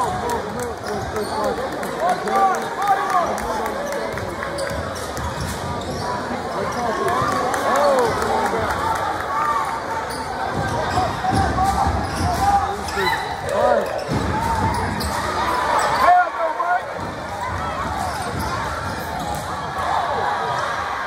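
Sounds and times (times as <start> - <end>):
crowd chatter: 0.0 - 21.0
sneakers squeaking: 3.8 - 8.1, 10.0 - 16.1, 17.0 - 19.7.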